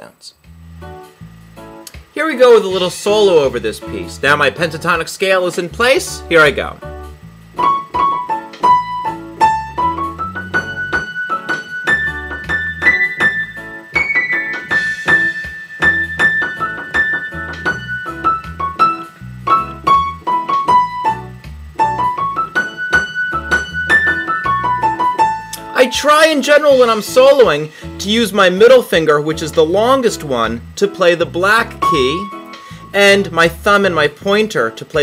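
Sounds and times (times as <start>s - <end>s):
reggae backing track: 5.6s - 35.0s
repeating bass line: 5.7s - 34.4s
piano solo: 7.6s - 25.6s.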